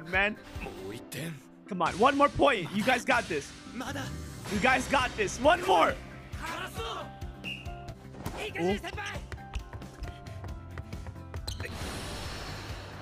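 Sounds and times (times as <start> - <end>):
background music: 0.0 - 13.0.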